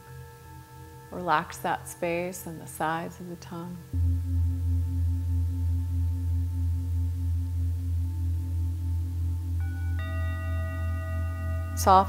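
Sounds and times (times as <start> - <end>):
deep singing bowl tone: 3.9 - 12.0
higher ringing tones: 3.9 - 12.0.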